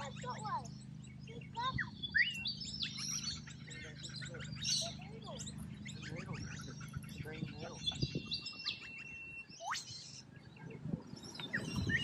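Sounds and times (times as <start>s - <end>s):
birds calling: 0.0s - 12.0s.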